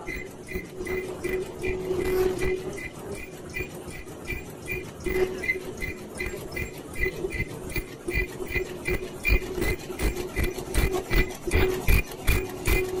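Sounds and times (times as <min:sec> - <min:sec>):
machine clicking cycle: 0:00.0 - 0:13.0
machine hum: 0:00.0 - 0:13.0.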